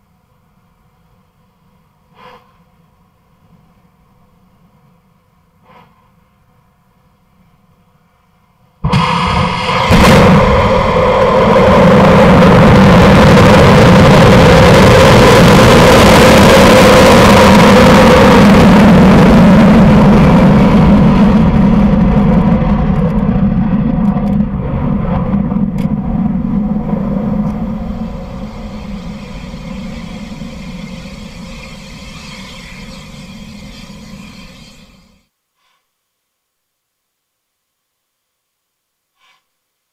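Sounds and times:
sharp crack: 8.8 - 13.9
rocket engine roar: 8.8 - 35.2.

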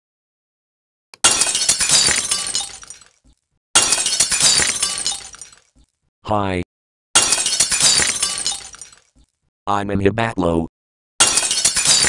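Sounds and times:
glass shattering: 1.2 - 5.8, 7.2 - 9.2, 11.2 - 12.0.

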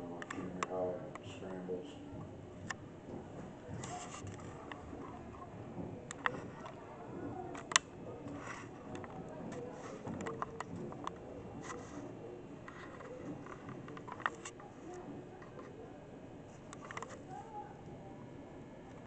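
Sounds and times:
faint distant voices: 0.0 - 19.0.

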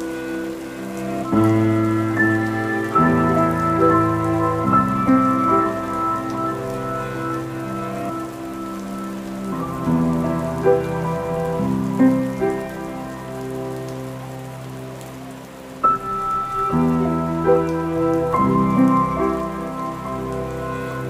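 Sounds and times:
rain falling: 0.0 - 21.0
slow instrumental music: 0.0 - 21.0.

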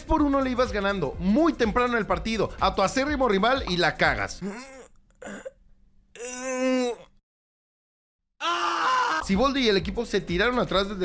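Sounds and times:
cartoon character wailing: 8.4 - 9.3.

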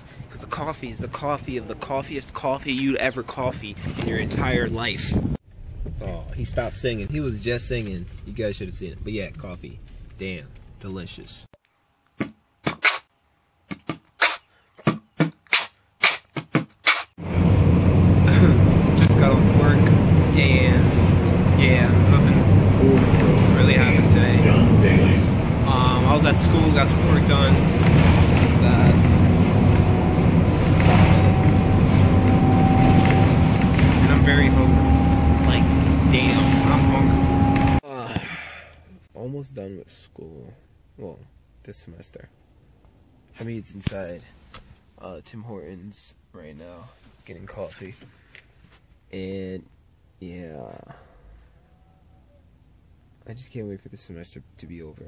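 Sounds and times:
sharp pops: 11.6 - 13.1, 13.7 - 17.2
bus engine rumble: 17.2 - 37.8
high whine: 17.2 - 37.8.

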